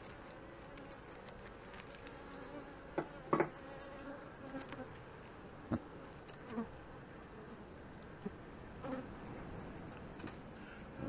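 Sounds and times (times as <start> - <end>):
honey bees humming: 0.0 - 9.8.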